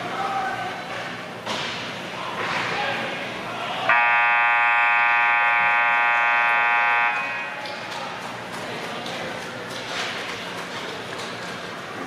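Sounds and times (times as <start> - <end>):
scoreboard horn buzzing: 3.9 - 7.6.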